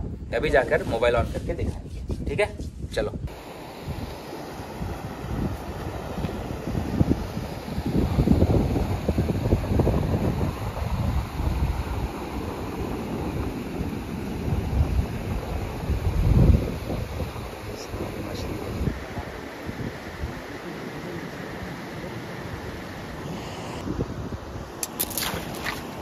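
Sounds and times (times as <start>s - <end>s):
wind buffeting microphone: 0.0s - 20.6s, 22.9s - 26.0s.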